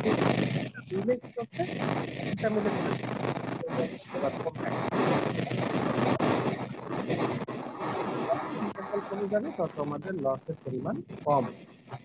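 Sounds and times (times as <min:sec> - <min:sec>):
person speaking: 0:00.0 - 0:07.4, 0:08.0 - 0:11.6.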